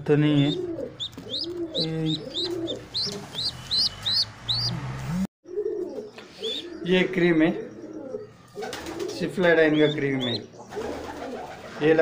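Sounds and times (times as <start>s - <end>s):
high rising peeps: 0.4s - 5.3s
pigeon cooing: 0.4s - 11.7s.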